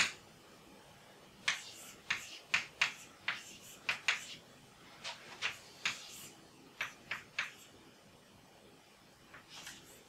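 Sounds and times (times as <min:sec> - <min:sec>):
chalk tapping on blackboard: 0:00.0 - 0:00.2, 0:01.4 - 0:04.4, 0:05.0 - 0:07.7.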